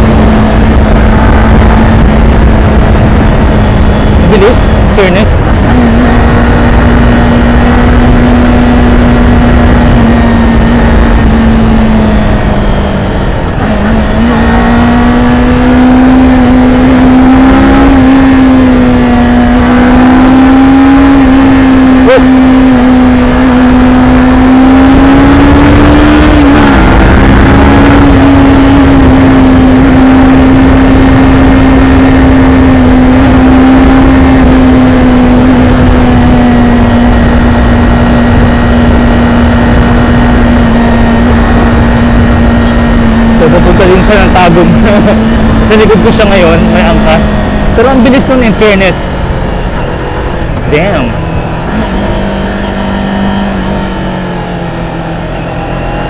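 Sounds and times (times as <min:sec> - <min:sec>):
wind noise on microphone: 0:00.0 - 0:20.1, 0:23.0 - 0:43.5
motorcycle engine at speed: 0:00.0 - 0:56.0.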